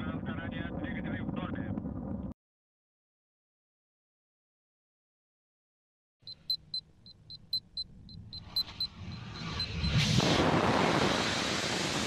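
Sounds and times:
low rumble: 0.0s - 2.4s
rapid high-pitched electronic beeps: 6.3s - 10.0s
rocket engines igniting: 8.6s - 12.0s.

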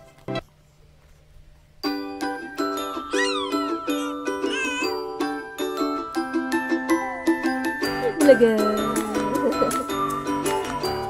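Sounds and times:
tinkling chime-like melody: 1.8s - 11.0s.

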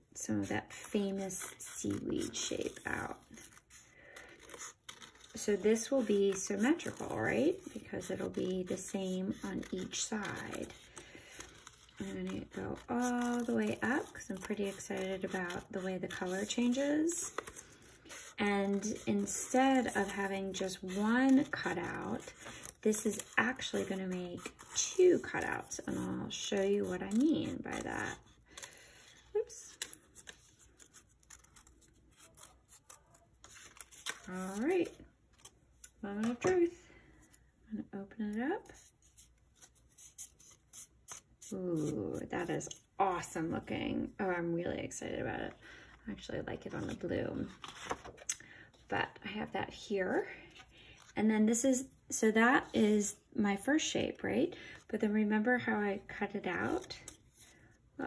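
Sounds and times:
scissors snipping paper: 0.4s - 36.6s.

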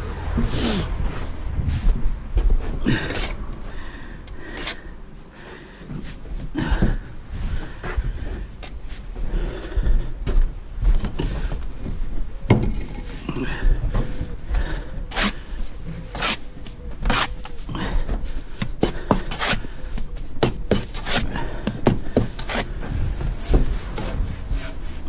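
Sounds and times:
trowel scraping and slapping wet mortar: 15.1s - 17.6s, 18.4s - 22.8s.

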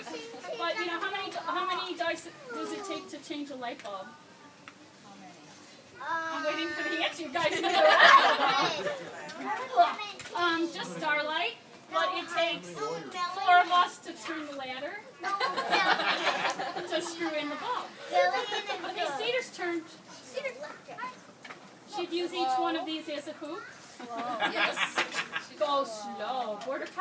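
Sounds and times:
faint voices of group with children: 0.0s - 27.0s.

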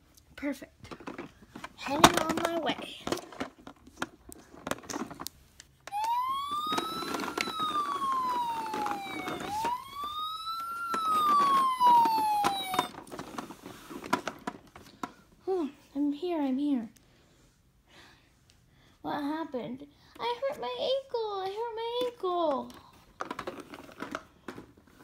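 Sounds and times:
toy electronic siren wailing: 5.9s - 13.0s.

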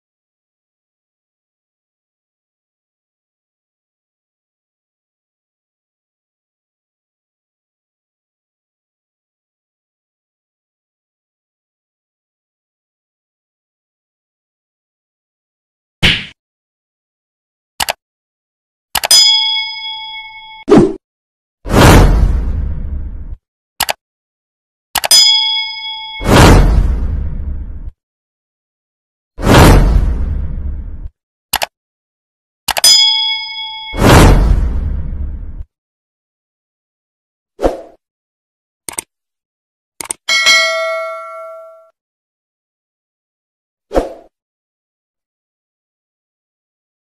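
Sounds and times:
mouse click: 17.8s - 18.0s, 23.8s - 24.0s
bright bell ding: 19.1s - 20.7s, 25.1s - 26.2s, 32.8s - 34.0s, 40.3s - 41.9s
short whoosh: 29.4s - 31.1s.

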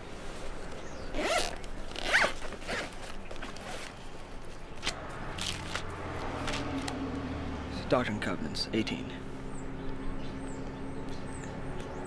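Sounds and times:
zipper pulled open: 1.1s - 4.0s.

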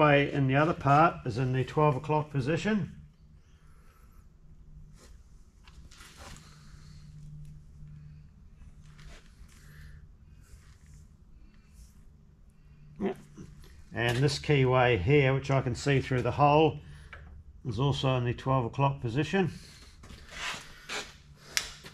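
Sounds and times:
steady low hum: 0.0s - 21.9s.

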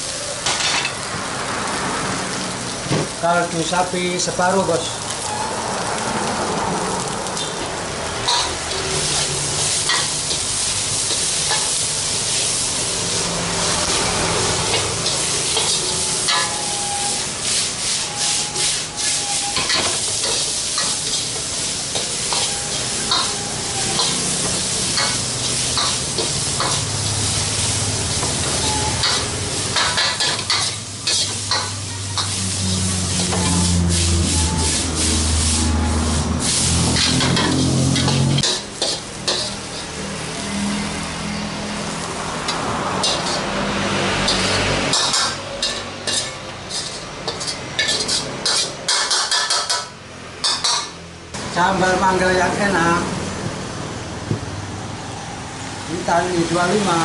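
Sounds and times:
vegetables sizzling in a wok: 0.0s - 57.0s
metal ladle scraping a wok: 8.2s - 12.7s, 13.6s - 41.4s, 42.4s - 51.0s.

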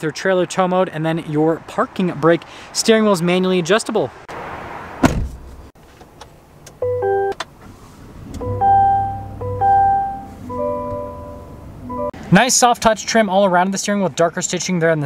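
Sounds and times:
rustle: 4.3s - 6.4s, 7.4s - 8.3s
electronic chime tones: 6.8s - 7.3s, 8.4s - 12.1s.

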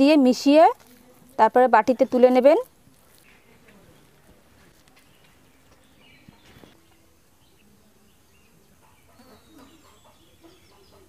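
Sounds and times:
small birds chirping: 0.6s - 11.0s
hens clucking: 8.8s - 11.0s.

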